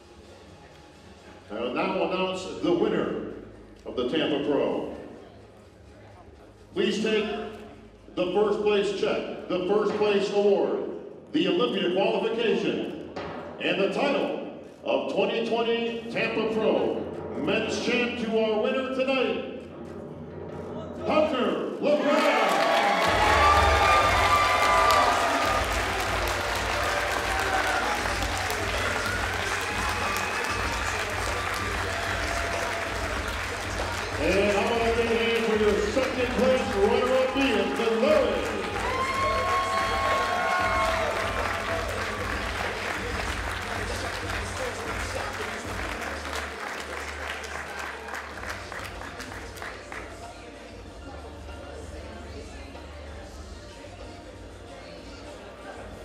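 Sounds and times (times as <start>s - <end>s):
audience applauding: 22.0s - 50.2s.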